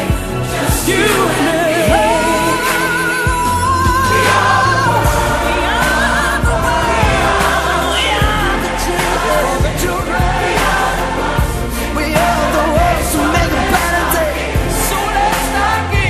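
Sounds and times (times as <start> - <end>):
pop song with singing: 0.0 - 16.0.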